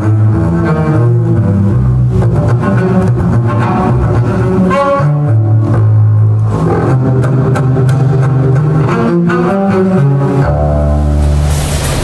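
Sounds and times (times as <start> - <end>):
bowed double bass: 0.0 - 12.0.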